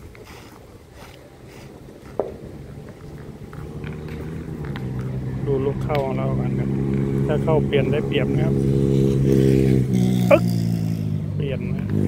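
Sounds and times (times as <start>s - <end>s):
vehicle engine running: 2.4s - 12.0s
voices: 5.0s - 8.6s, 10.3s - 10.5s.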